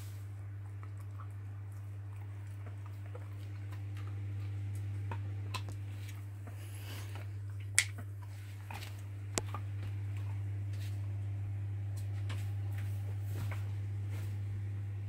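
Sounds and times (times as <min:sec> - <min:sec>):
steady low hum: 0:00.0 - 0:15.0
dog eating clicks and smacks: 0:00.6 - 0:06.2.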